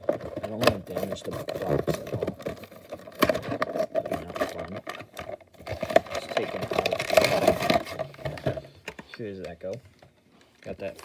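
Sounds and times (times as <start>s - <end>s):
packaging crinkling: 0.0s - 9.8s
plastic clicks and scrapes: 0.0s - 11.0s.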